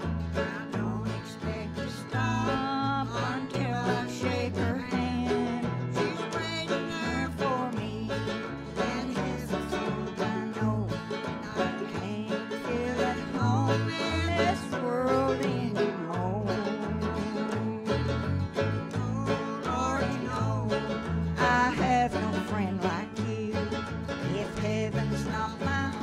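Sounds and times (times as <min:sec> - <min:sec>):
acoustic guitar: 0:00.0 - 0:26.0
banjo: 0:00.0 - 0:26.0.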